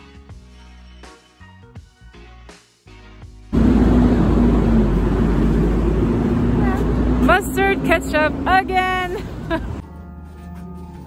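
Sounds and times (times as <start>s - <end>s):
background music: 0.0s - 4.3s, 6.6s - 11.0s
traffic rumble: 3.5s - 9.8s.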